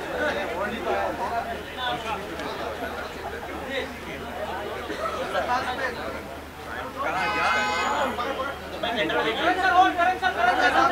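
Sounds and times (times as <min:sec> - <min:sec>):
people chattering: 0:00.0 - 0:10.9.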